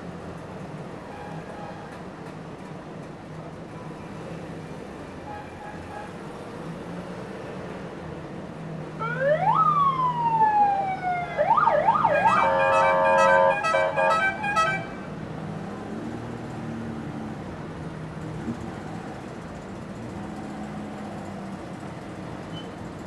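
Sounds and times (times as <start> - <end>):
siren wailing and yelping: 9.0 - 13.4.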